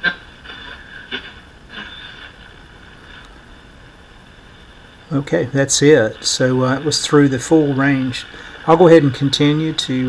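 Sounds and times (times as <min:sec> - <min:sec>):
faint radio signal snatches: 0:00.0 - 0:10.0
radio static hiss: 0:00.0 - 0:10.0.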